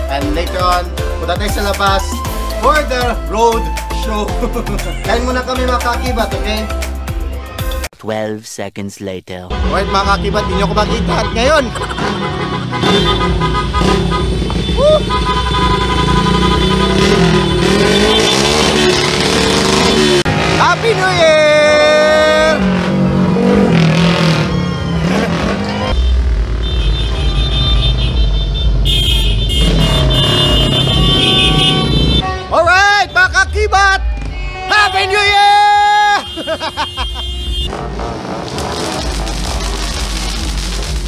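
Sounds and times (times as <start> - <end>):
music: 0.0 - 7.9
vehicle engines running: 9.5 - 41.0
car horns blasting: 9.6 - 20.4, 25.4 - 33.5, 34.1 - 38.1
people shouting: 14.7 - 15.2, 33.7 - 36.4.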